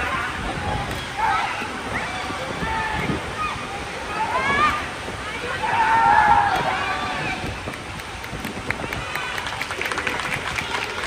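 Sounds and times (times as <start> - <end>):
crowd noise and voices: 0.0 - 11.0.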